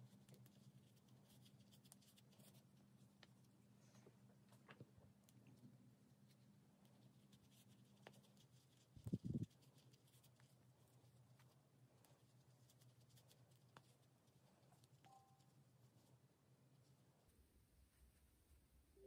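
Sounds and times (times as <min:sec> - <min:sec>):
faint low hum: 0:00.0 - 0:19.0
fingers rustling stuffing: 0:05.2 - 0:17.3.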